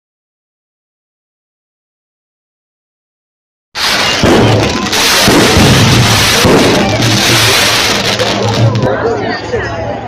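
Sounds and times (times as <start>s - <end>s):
fireworks crackling and banging: 3.8s - 9.5s.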